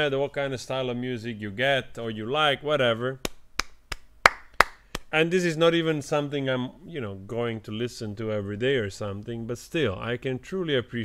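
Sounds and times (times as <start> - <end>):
sharp hand claps: 3.2 - 5.1.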